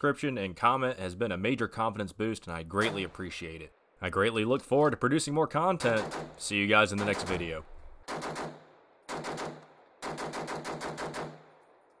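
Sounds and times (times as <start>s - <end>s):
gunshot echo: 2.8s - 3.3s, 5.8s - 6.4s, 7.0s - 11.6s
rifle rapid burst: 5.8s - 6.4s, 7.0s - 11.6s.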